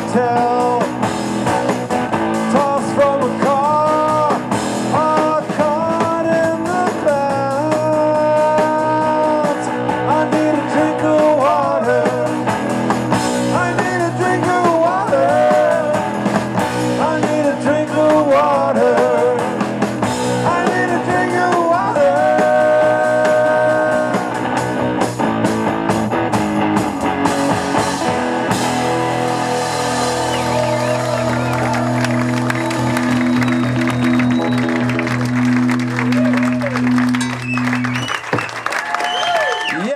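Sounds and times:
man singing: 0:00.0 - 0:01.1, 0:02.3 - 0:12.6, 0:13.3 - 0:24.6
live rock band playing: 0:00.0 - 0:38.8.

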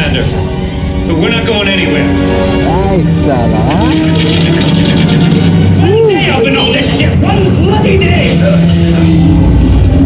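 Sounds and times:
dramatic film score: 0:00.0 - 0:10.0.

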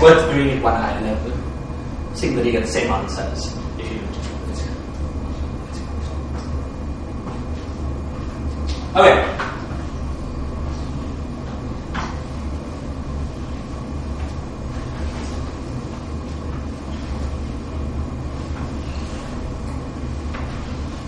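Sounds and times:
low room hum: 0:00.0 - 0:21.0
cloth wiping chalkboard: 0:13.2 - 0:21.0.

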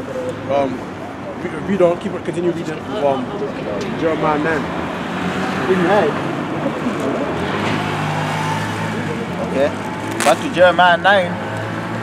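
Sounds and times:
road traffic engine hum: 0:00.0 - 0:12.0.

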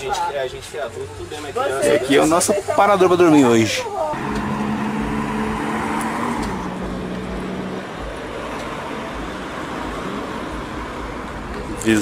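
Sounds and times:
road noise from passing cars: 0:00.0 - 0:12.0
vehicle engine running nearby: 0:04.2 - 0:12.0.

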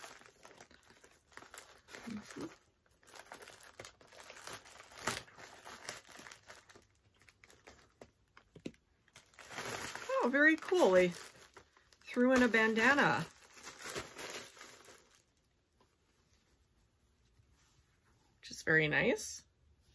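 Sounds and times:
mailing bag crinkling: 0:00.0 - 0:08.4, 0:09.1 - 0:15.4.

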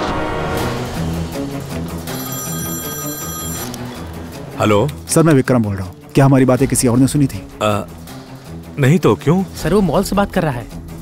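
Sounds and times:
background film music: 0:00.0 - 0:11.0
mobile phone ringing: 0:02.0 - 0:04.1.

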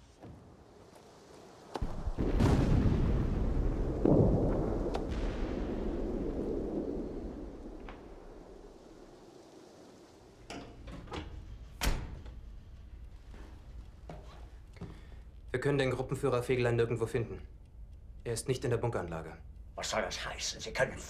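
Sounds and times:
artillery shell explosion: 0:01.8 - 0:09.2.

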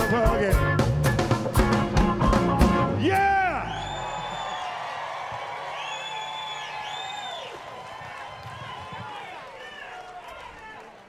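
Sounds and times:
audience cheering: 0:03.0 - 0:11.0
high whoops: 0:03.1 - 0:10.8.

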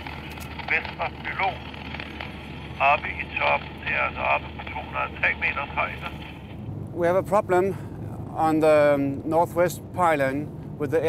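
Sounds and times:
crackly radio speech: 0:00.6 - 0:02.0, 0:02.8 - 0:06.6.

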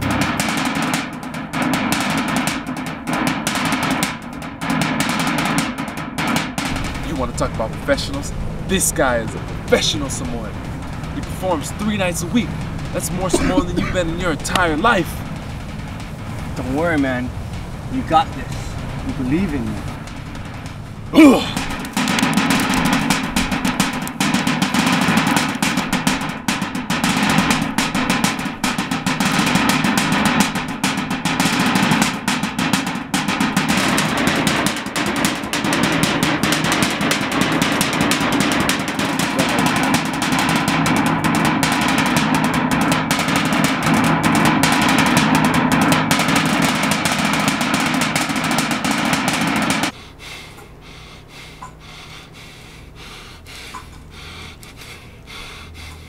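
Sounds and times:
fast driving percussion drumming: 0:00.0 - 0:50.0.

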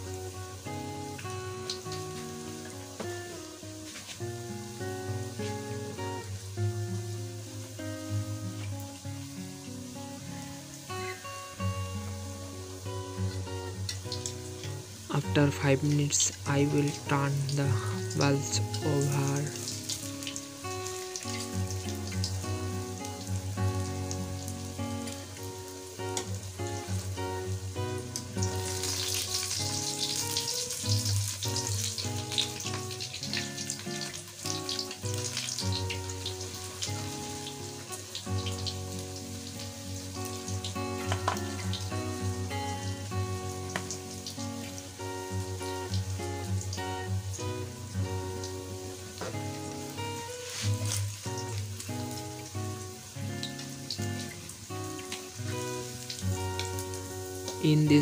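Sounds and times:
food sizzling in oil: 0:00.0 - 0:58.0
instrumental background music: 0:00.0 - 0:58.0.

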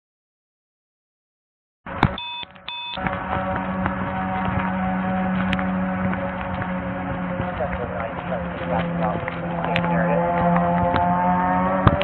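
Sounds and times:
short electronic beeps: 0:02.2 - 0:03.0.

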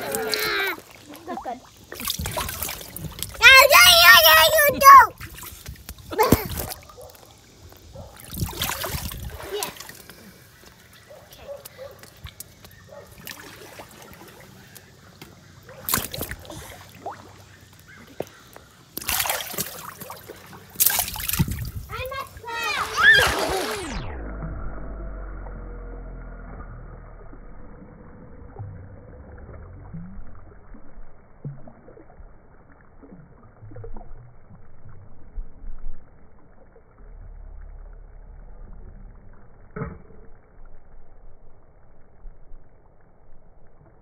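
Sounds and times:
pool water splashing: 0:00.0 - 0:42.0.

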